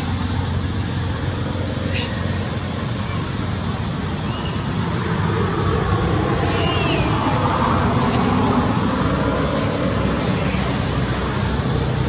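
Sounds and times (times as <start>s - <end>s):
rumbling background noise: 0.0s - 12.0s.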